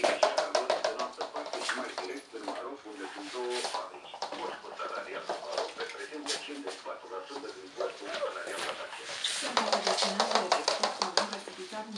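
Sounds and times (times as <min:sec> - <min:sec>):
people talking: 0:00.0 - 0:11.9.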